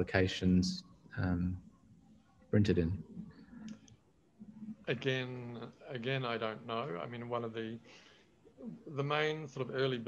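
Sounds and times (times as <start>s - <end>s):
man talking: 0.0s - 1.6s, 2.6s - 3.1s, 4.7s - 7.9s, 8.6s - 10.0s
soft clicks: 3.3s - 4.0s.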